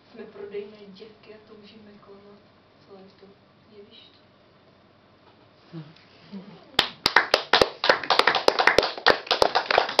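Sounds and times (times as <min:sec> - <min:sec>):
audience clapping: 0:06.8 - 0:10.0.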